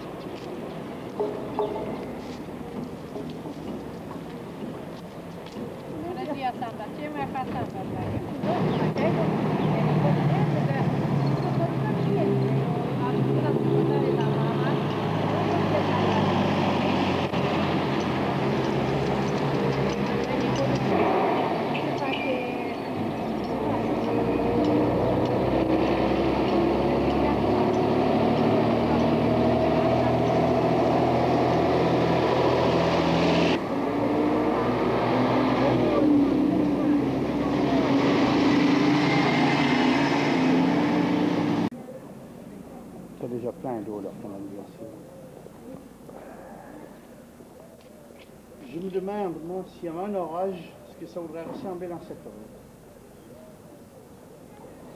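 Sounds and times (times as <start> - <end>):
vehicle engines running: 0.0 - 41.8.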